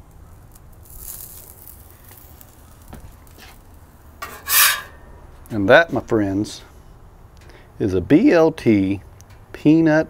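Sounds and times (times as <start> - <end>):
spatula scraping a griddle: 3.3 - 3.6, 4.2 - 5.0.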